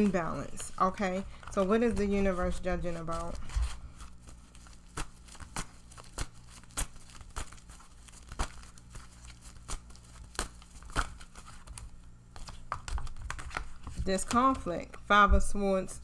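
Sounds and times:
cards rustling and slapping: 0.0s - 15.0s.

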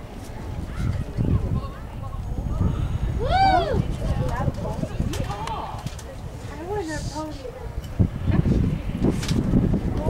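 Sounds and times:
voices: 0.0s - 9.1s.

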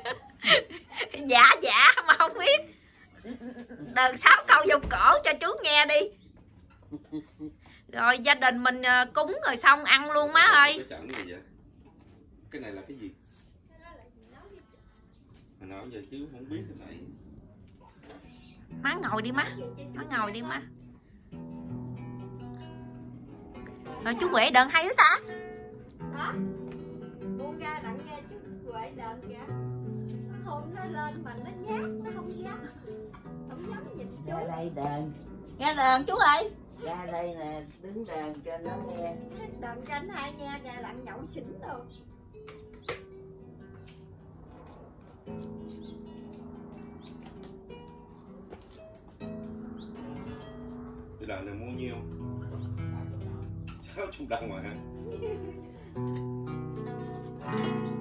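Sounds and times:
acoustic guitar plucked: 17.8s - 58.0s.

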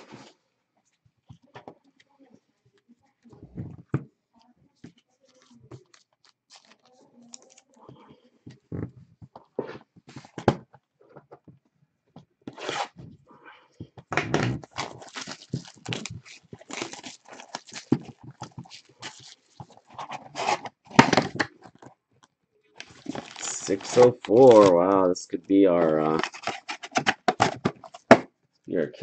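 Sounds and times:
plastic and cardboard crinkling and tearing: 4.8s - 8.8s, 14.2s - 22.0s, 22.8s - 28.2s.

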